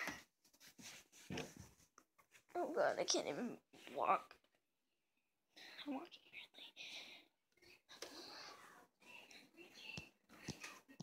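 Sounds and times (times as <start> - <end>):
faint whispering: 5.6 - 11.0.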